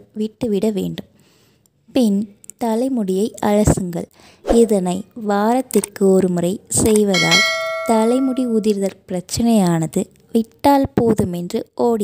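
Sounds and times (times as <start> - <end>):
bell chime ringing tone: 7.2 - 8.7.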